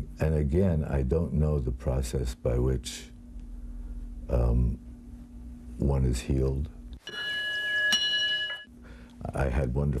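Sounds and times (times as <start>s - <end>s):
temple bell ringing: 7.0s - 8.7s.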